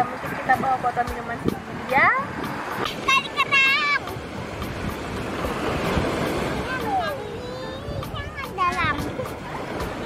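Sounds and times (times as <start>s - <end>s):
waves washing onto shore: 0.0s - 10.0s
wind buffeting microphone: 0.0s - 10.0s.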